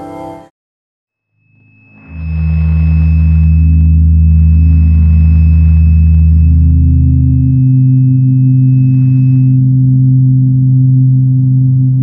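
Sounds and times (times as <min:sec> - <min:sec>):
faint thin high tone: 0:01.2 - 0:04.4
low electronic drone: 0:01.4 - 0:12.0.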